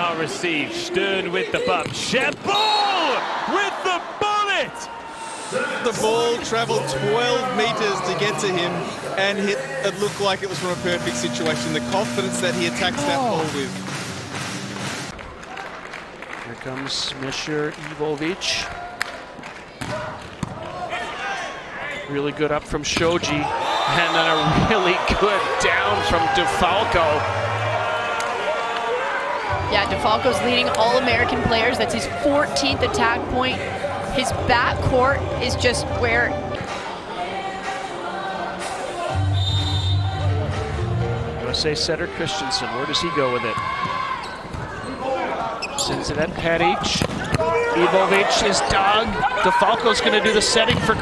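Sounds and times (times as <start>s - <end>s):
arena crowd noise: 0.0s - 51.0s
shoes squeaking on court floor: 44.2s - 46.2s.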